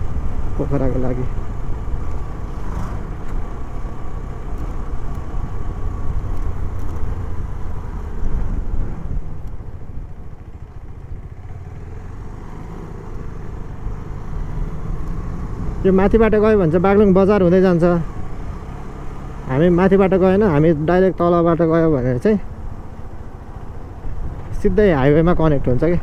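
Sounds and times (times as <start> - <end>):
motorcycle engine and road rumble: 0.0 - 26.0.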